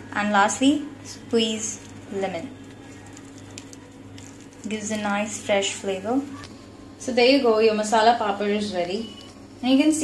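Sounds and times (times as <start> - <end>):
low background hum: 0.0 - 10.0
woman speaking: 0.1 - 2.6, 4.6 - 10.0.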